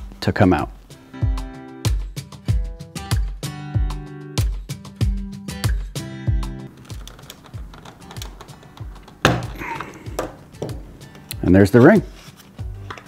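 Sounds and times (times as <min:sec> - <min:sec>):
background music with steady beat: 0:00.0 - 0:13.0.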